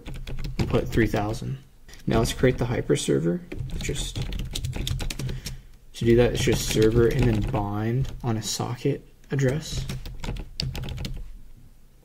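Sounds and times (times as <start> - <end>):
computer keyboard typing: 0.0 - 2.6, 3.5 - 8.3, 9.4 - 11.3.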